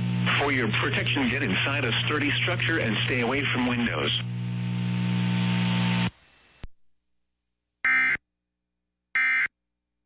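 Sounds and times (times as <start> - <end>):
radio hum: 0.0 - 6.1.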